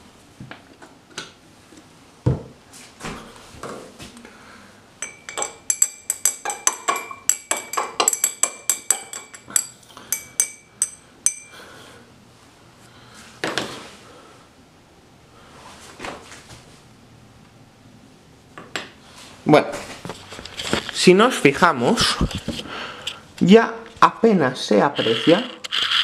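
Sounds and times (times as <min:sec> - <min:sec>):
glass rod clinking against beaker: 0:05.0 - 0:11.6.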